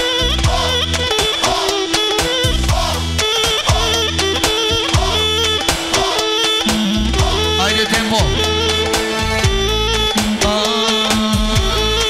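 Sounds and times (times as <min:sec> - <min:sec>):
live band playing folk dance music: 0:00.0 - 0:12.0.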